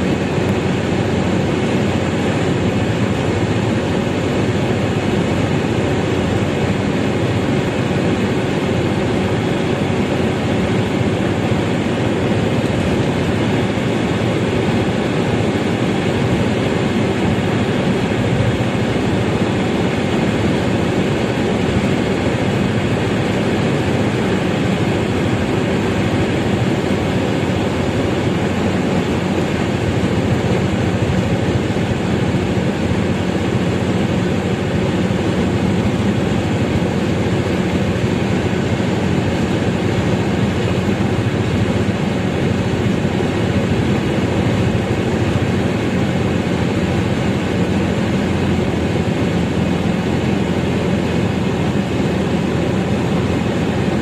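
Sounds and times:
road and engine noise in car cabin: 0.0s - 54.0s.

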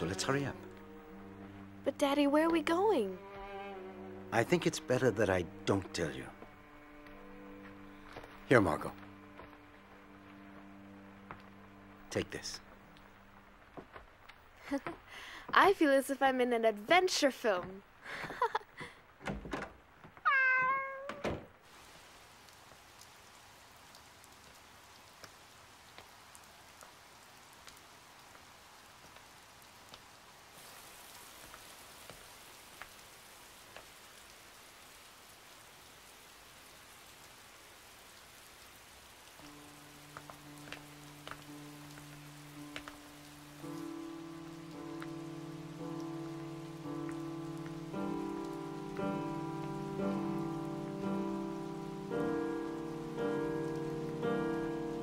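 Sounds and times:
slow music with held notes: 0.0s - 14.0s, 39.3s - 55.0s
steady rain on a street: 0.0s - 19.2s, 21.5s - 55.0s
cat meowing: 20.2s - 21.2s.

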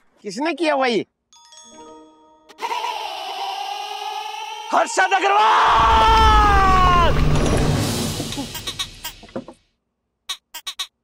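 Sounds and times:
man shouting: 4.6s - 7.2s
low rumble: 5.8s - 8.6s.

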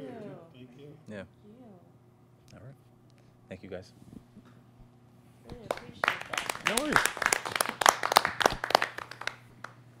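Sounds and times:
people clapping: 5.5s - 9.8s.

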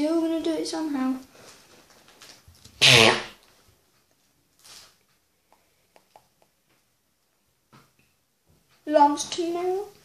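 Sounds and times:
faint rustles and clicks: 1.1s - 2.8s
child explosive cough-like burst: 2.8s - 3.3s.

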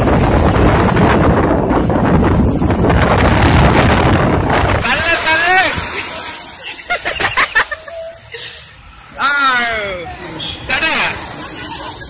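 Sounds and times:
street noise hiss: 0.0s - 12.0s.

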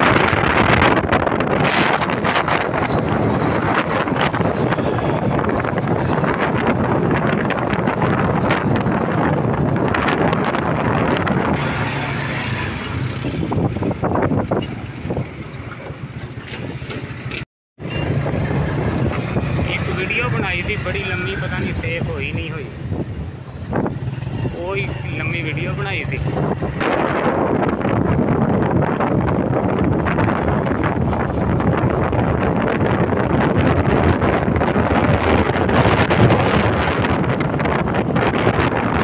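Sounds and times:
vehicle road noise: 0.0s - 39.0s
wind rushing over microphone: 0.0s - 39.0s.

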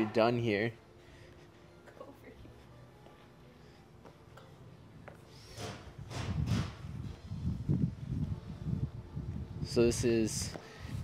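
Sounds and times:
wind buffeting microphone: 6.0s - 11.0s.

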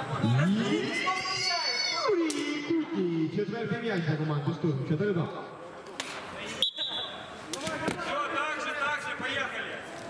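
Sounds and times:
referee's whistle blast: 6.6s - 7.2s.

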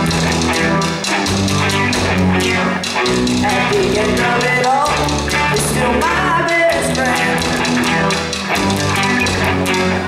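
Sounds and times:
bass guitar: 0.0s - 10.0s
drum kit with cymbal strikes: 0.0s - 10.0s
electric guitar: 0.0s - 10.0s.

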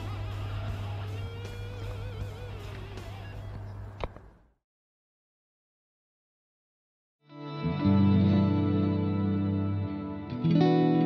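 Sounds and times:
electric guitar notes with vibrato: 7.3s - 11.0s.

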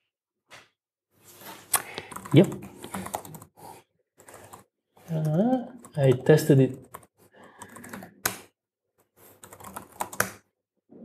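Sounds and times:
typing on a keyboard: 1.8s - 3.5s, 4.2s - 8.5s, 9.4s - 10.4s.

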